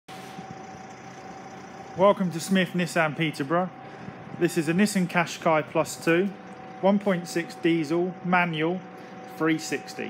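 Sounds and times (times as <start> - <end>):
steady low hum: 0.1 - 10.0.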